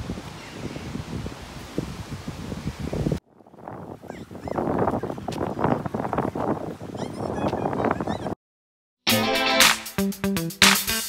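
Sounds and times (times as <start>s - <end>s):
wind on microphone: 0.0s - 8.4s
background music with a beat: 9.1s - 11.0s.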